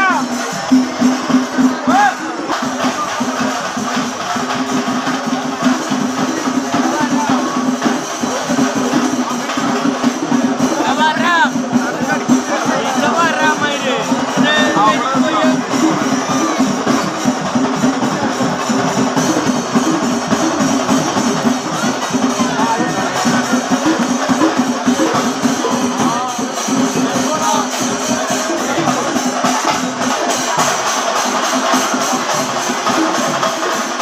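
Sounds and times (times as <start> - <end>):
drums and cymbals fast beat: 0.0 - 34.0.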